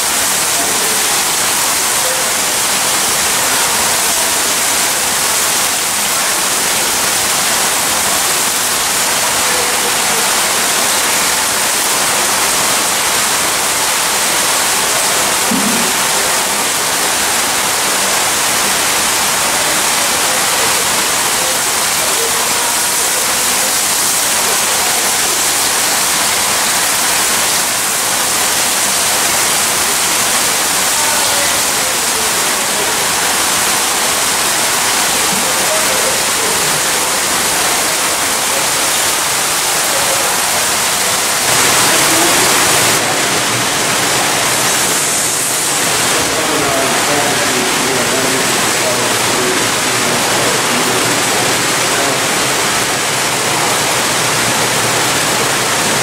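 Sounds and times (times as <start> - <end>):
faint voices: 0.0 - 56.0
water rushing in troughs: 0.0 - 56.0.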